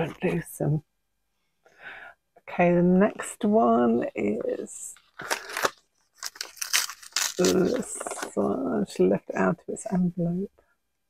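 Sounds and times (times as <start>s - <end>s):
paper envelope rustling: 5.0s - 8.3s.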